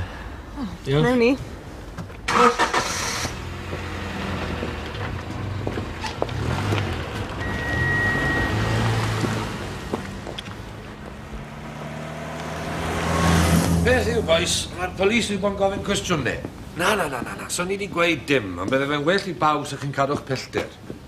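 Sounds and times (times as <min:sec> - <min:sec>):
car engine pulling away: 0:02.3 - 0:16.2.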